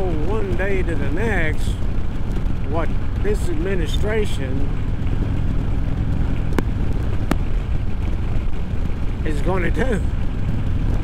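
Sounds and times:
motorcycle engine running: 0.0 - 11.0
wind noise on microphone: 4.6 - 11.0.

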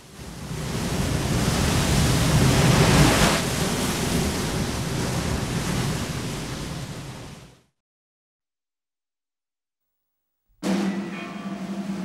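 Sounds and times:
surging sea water: 0.0 - 7.6.

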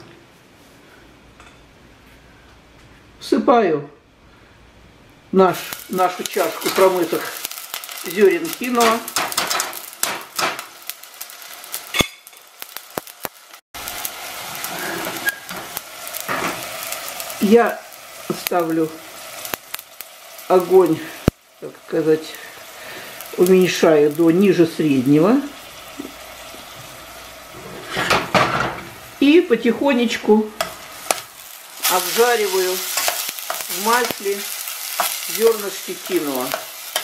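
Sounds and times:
grains sizzling in hot oil: 5.4 - 37.0
pot moved on burner grate: 27.5 - 29.0.

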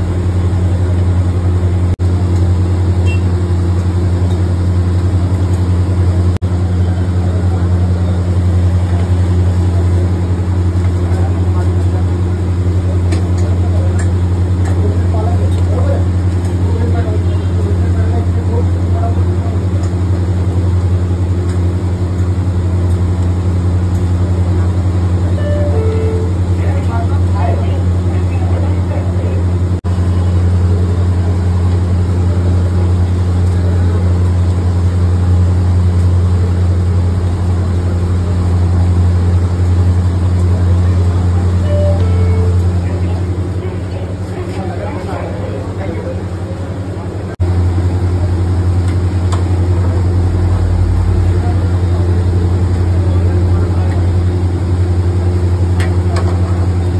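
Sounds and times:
kitchen machinery humming: 0.0 - 56.9
faint voices: 40.2 - 47.4.

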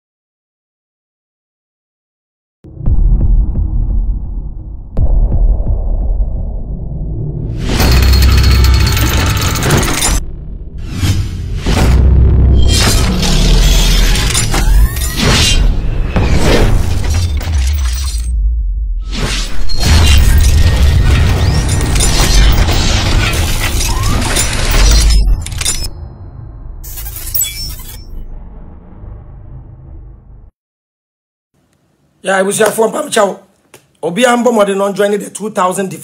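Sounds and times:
deep bass rumble: 2.7 - 9.0, 10.1 - 13.9, 28.2 - 30.5
cinematic music: 2.7 - 27.0
crashing shattering effects: 7.6 - 10.2, 11.1 - 18.4, 19.1 - 26.0.

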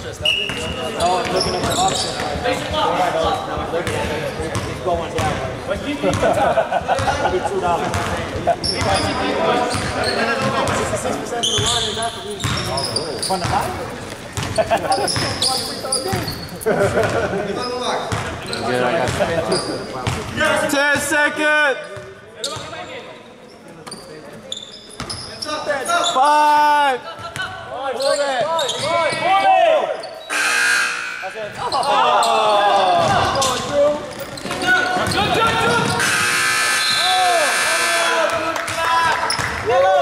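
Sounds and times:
players' voices echoing: 0.0 - 40.0.

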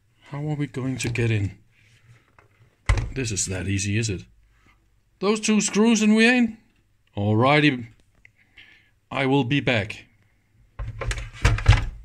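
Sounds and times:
thuds and knocks of handling: 2.8 - 3.2, 10.8 - 12.0.

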